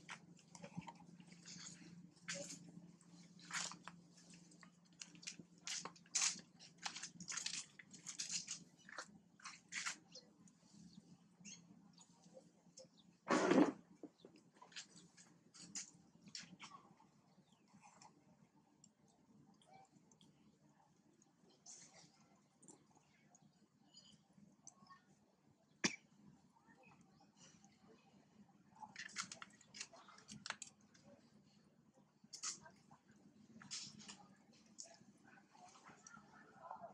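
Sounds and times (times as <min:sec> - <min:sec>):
monkeys chewing and smacking: 0:00.0 - 0:10.6, 0:28.7 - 0:31.2.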